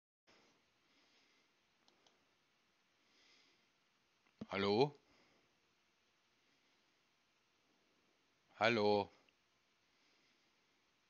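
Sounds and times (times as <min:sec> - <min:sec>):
faint hiss: 0:00.3 - 0:11.0
faint clicks: 0:01.8 - 0:02.2.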